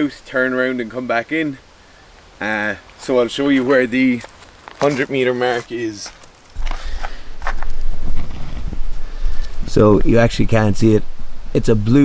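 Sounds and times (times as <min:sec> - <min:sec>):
footsteps on gravel: 0:03.0 - 0:09.0
camera handling rumble: 0:06.5 - 0:09.6.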